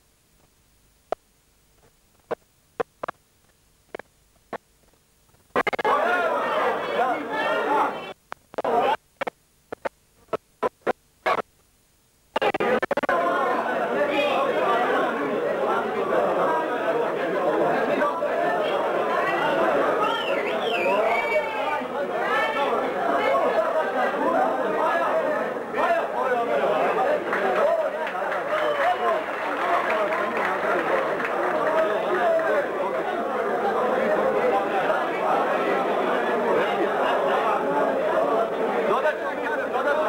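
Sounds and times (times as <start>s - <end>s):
hubbub of overlapping voices: 5.5s - 9.8s, 12.3s - 40.0s
crowd talking: 5.6s - 9.0s, 12.4s - 40.0s.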